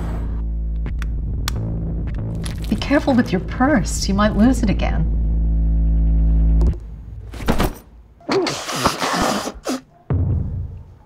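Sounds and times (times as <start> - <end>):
loud low hum: 0.0 - 7.4.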